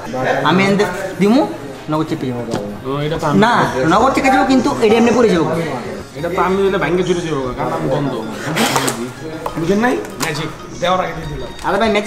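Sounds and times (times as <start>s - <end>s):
men talking: 0.0s - 12.0s.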